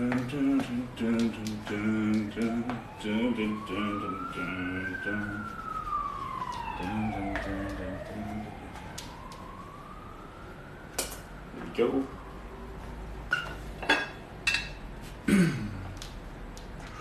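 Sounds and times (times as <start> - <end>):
siren wailing: 0.0 - 13.6.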